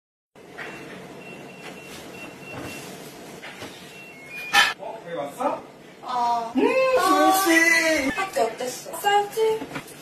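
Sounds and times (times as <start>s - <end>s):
door lock keypad beeps: 3.9s - 4.8s.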